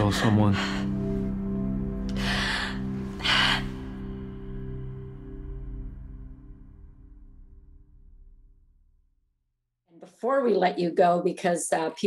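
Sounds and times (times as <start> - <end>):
orchestral score low chord: 0.0 - 8.2.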